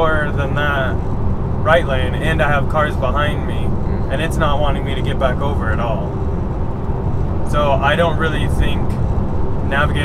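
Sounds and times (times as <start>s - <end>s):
man talking: 0.0s - 1.0s, 1.6s - 6.1s, 7.5s - 9.0s, 9.7s - 10.0s
road rumble inside car: 0.0s - 10.0s.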